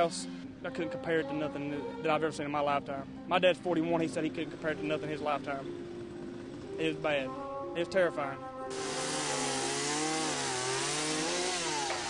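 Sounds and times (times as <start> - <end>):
chainsaw cutting: 8.7 - 12.0.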